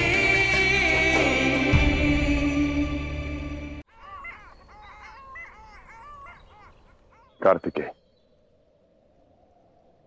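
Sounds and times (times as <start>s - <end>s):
waterfowl calling: 3.9s - 8.0s.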